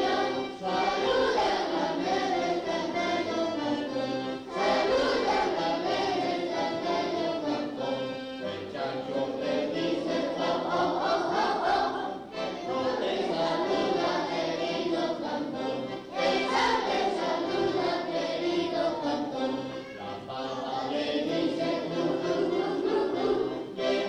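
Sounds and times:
children singing in unison: 0.0s - 24.0s
piano accordion: 0.0s - 24.0s.

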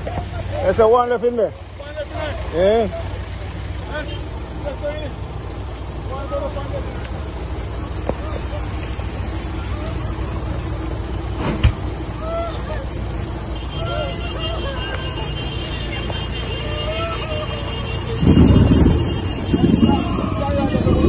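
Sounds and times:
heavy rain on road: 11.9s - 21.0s
wind buffeting microphone: 18.0s - 21.0s.

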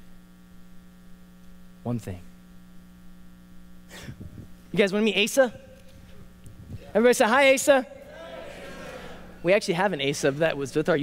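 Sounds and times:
electrical mains hum: 0.0s - 11.0s
man's voice: 6.8s - 11.0s.

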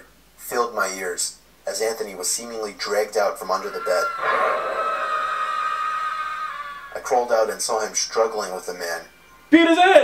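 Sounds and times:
high-pitched scream: 3.6s - 7.9s.

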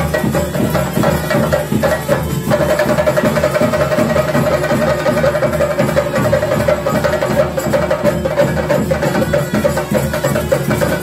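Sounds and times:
drums beaten fast: 0.0s - 11.0s.

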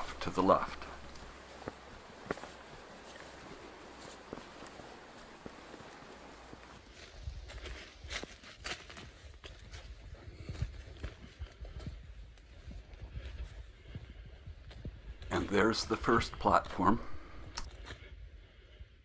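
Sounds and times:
steady hiss: 0.0s - 6.8s
footsteps crunching through dry leaves: 0.6s - 10.0s.

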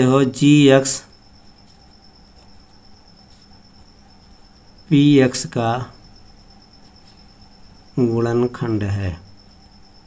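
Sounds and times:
insect trilling: 0.0s - 10.0s
pen scratching on paper: 1.4s - 4.4s, 6.4s - 7.3s.

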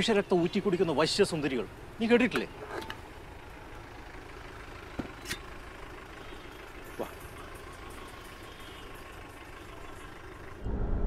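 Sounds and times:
background rumble: 10.6s - 11.0s.

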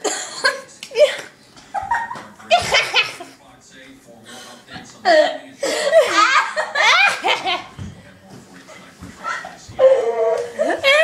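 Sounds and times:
girl laughing loudly: 5.9s - 7.6s.

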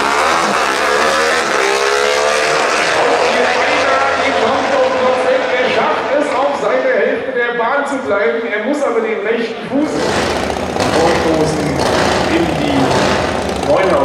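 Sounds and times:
motorcycles accelerating at full throttle: 0.0s - 7.3s, 9.6s - 14.0s.

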